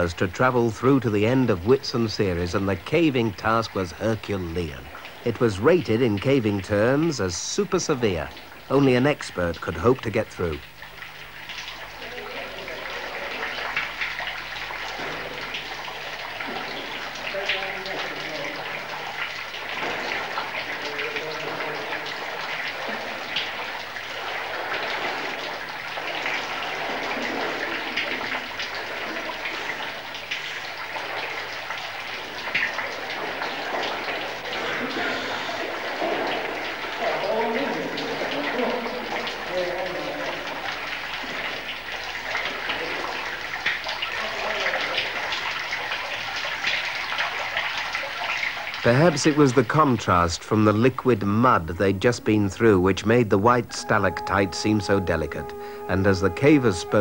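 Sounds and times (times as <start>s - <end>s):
water splashing and rushing: 0.0s - 57.0s.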